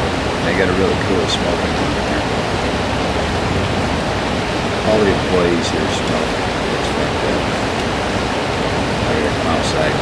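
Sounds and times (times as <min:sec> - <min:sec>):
creek water rushing: 0:00.0 - 0:10.0
man speaking: 0:00.4 - 0:02.4, 0:04.8 - 0:07.6, 0:09.0 - 0:10.0.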